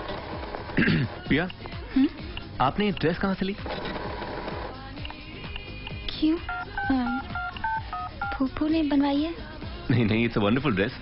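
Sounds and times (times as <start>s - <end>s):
cash register keypad beeps: 3.6s - 4.5s, 6.5s - 8.4s.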